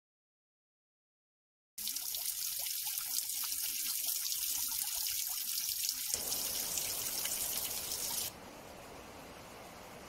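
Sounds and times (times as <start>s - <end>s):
water drips and plinks: 1.8s - 8.3s
water trickling and splashing: 1.8s - 8.4s.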